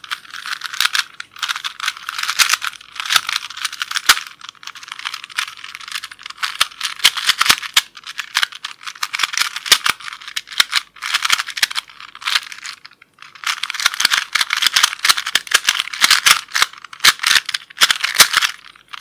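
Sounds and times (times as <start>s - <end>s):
puzzle cube clicking: 0.0s - 19.0s.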